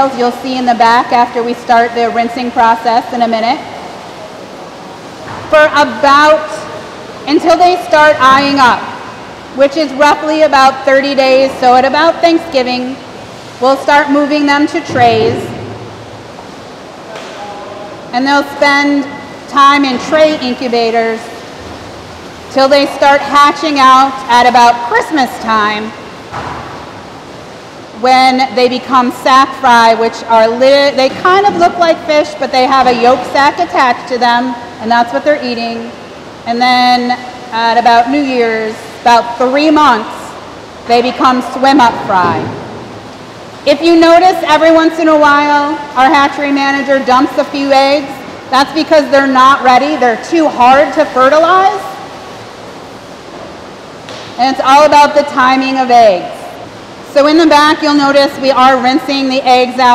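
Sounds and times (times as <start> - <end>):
running water rushing: 0.0 - 59.9.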